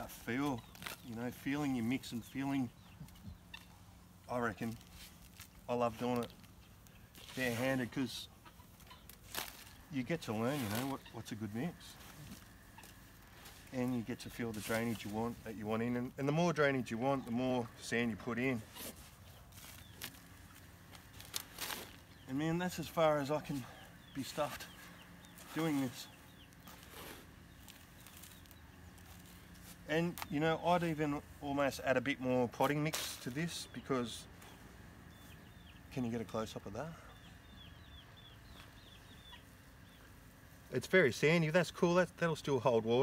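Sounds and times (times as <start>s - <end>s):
bird chirping: 0.0s - 41.4s
hands scraping gritty potting mix: 7.1s - 8.4s, 9.1s - 34.5s.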